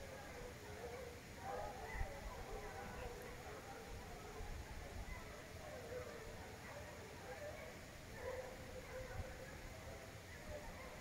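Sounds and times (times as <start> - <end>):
distant hunting dogs baying: 0.0 - 11.0.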